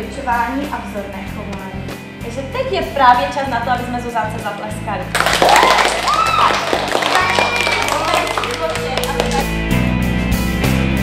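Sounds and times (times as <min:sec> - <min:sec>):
background music: 0:00.0 - 0:11.0
children clapping and calling out: 0:05.2 - 0:09.6.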